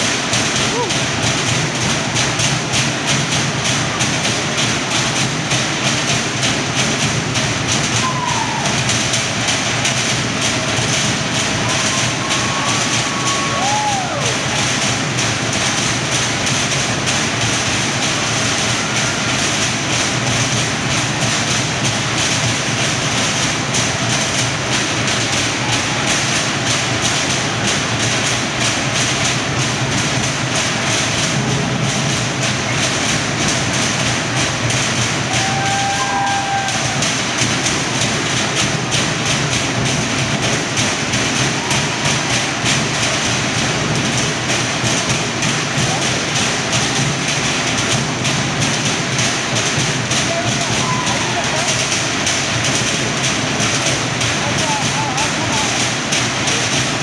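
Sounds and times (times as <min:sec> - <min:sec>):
fast drumming on log drums: 0:00.0 - 0:57.0.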